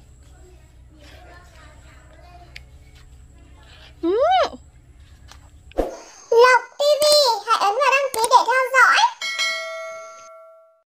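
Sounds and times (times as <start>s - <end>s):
bell-like notification chime: 9.2s - 10.8s.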